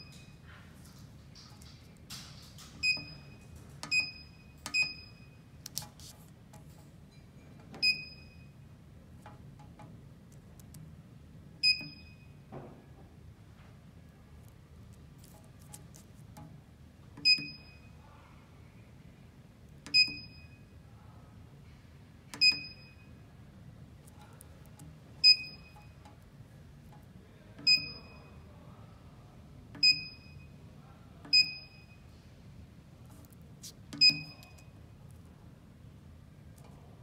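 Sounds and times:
keypad beeps: 2.8 - 5.4, 7.8 - 8.6, 11.6 - 12.4, 17.2 - 17.9, 19.9 - 20.7, 22.4 - 23.2, 25.2 - 26.1, 27.6 - 28.4, 29.8 - 30.6, 31.3 - 32.1, 34.0 - 34.7.

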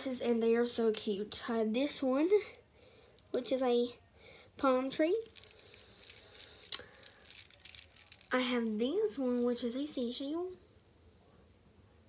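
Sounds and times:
faint room noise: 0.0 - 12.0
beads clicking together: 2.4 - 3.7, 5.1 - 8.5.

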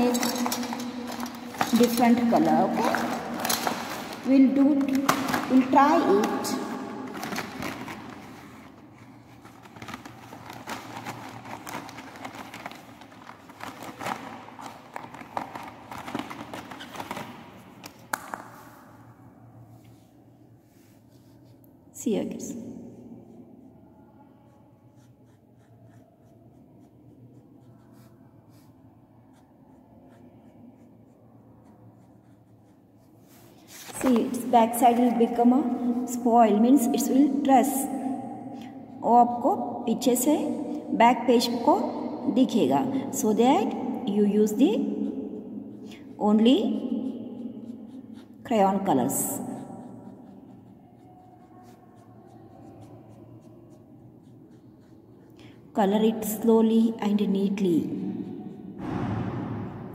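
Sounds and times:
crayon scratching on paper: 24.2 - 37.3, 43.3 - 59.9.

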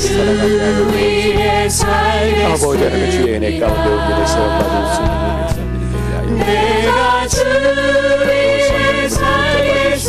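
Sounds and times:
instrumental accompaniment: 0.0 - 10.0
worship team singing: 0.0 - 10.0.

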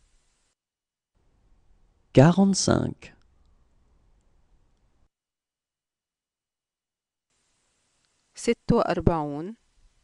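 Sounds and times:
faint room hiss: 0.0 - 0.6, 1.2 - 5.1, 7.3 - 10.0.

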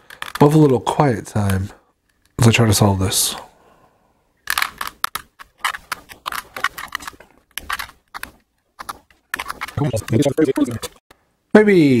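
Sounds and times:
puzzle cube clicking and rattling: 0.0 - 2.4, 4.4 - 11.0.

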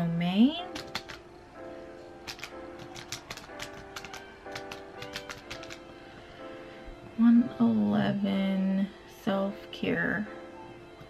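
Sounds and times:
background music with sustained chords: 0.0 - 11.0
computer keyboard keys clicking: 0.7 - 1.2, 2.2 - 5.8.

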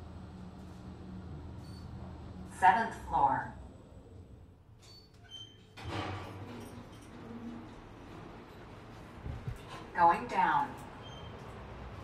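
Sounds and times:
elevator doors sliding open: 4.7 - 12.0.

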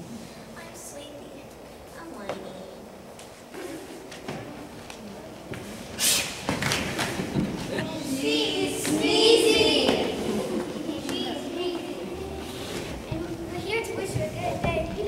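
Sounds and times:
children shouting: 7.7 - 12.7.

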